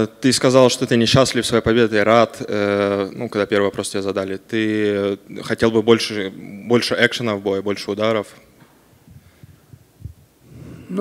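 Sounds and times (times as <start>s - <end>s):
microphone handling thumps: 8.6s - 10.3s
faint breath: 9.1s - 9.8s, 10.4s - 11.0s.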